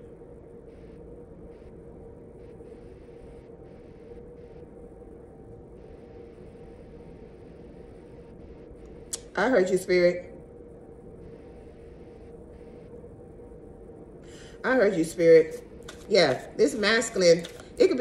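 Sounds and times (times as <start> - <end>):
faint constant hum: 0.0 - 18.0.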